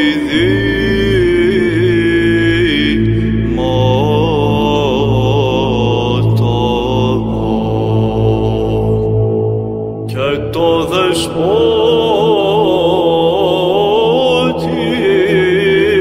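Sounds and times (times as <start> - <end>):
low held drone: 0.0 - 16.0.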